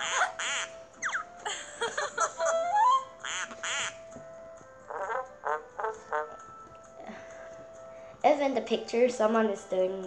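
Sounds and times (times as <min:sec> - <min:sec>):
cartoon duck quacks: 0:00.0 - 0:00.7, 0:03.3 - 0:04.0, 0:04.9 - 0:06.4
held note of background music: 0:02.5 - 0:10.0.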